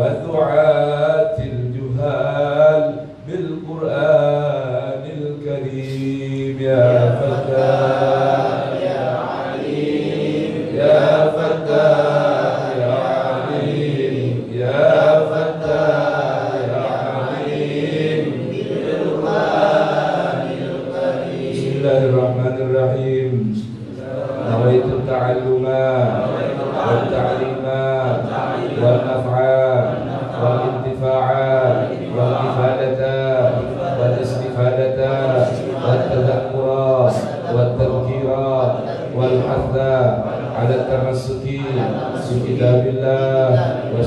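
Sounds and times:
voices chanting melodically: 0:00.0 - 0:44.0.

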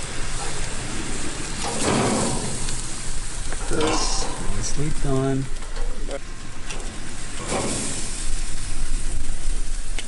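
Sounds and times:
fish sizzling on a hot grill: 0:00.0 - 0:10.0.

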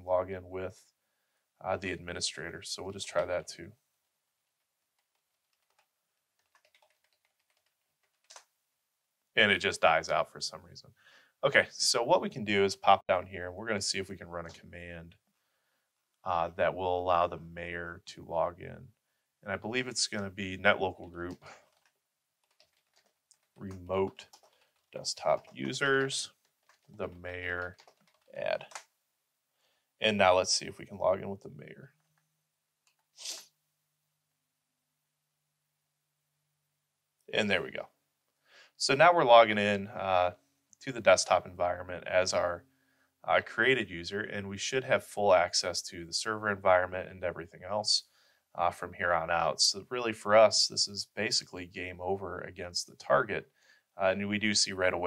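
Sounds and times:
computer keyboard typing: 0:05.0 - 0:08.5, 0:21.0 - 0:28.9.

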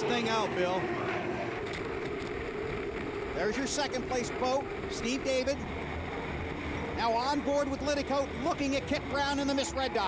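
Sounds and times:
turbine engine steady tone: 0:00.0 - 0:10.0.

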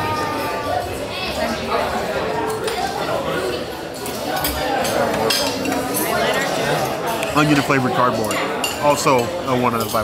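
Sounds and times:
diners chatting: 0:00.0 - 0:10.0
dishes and cutlery clinking: 0:03.9 - 0:10.0.

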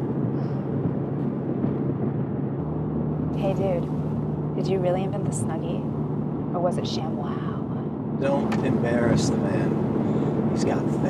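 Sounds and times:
road and engine rumble in car: 0:00.0 - 0:11.0.

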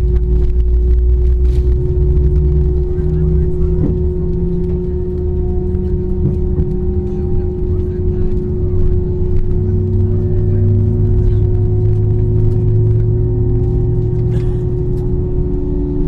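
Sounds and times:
aircraft cabin engine hum: 0:00.0 - 0:16.0.

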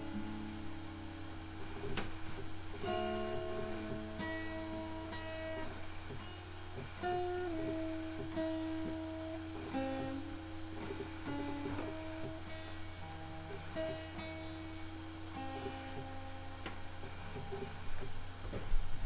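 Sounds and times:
acoustic guitar picked slowly: 0:00.0 - 0:19.0
steady low hum: 0:00.0 - 0:19.0.

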